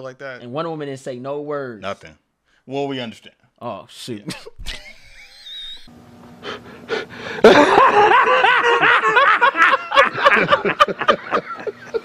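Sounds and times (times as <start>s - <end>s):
men laughing loudly: 4.3s - 5.9s, 7.3s - 12.0s.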